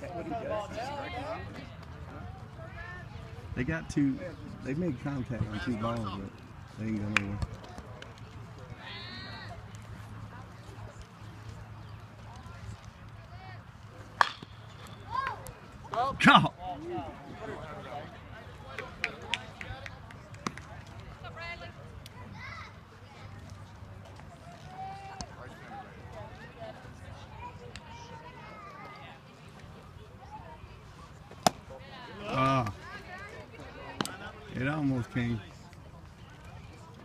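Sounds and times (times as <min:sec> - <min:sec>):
distant voices: 0:00.0 - 0:37.0
ball impact crack: 0:14.1 - 0:15.5, 0:31.3 - 0:31.7.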